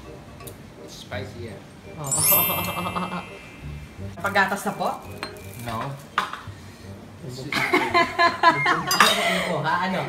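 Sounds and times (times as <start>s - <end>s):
dishes and cutlery clinking: 5.0s - 6.5s, 8.7s - 9.5s.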